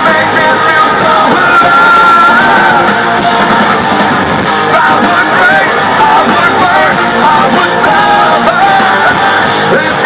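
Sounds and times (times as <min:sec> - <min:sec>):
person singing: 0:00.0 - 0:03.8, 0:04.6 - 0:10.0
live hard rock band: 0:00.0 - 0:10.0.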